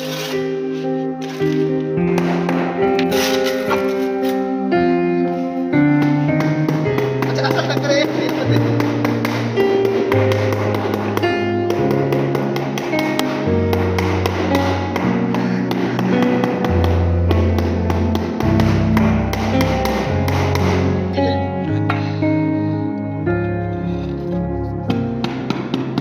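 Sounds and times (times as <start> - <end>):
rubber mallet tapping floor tile: 5.8 - 21.0, 24.9 - 26.0.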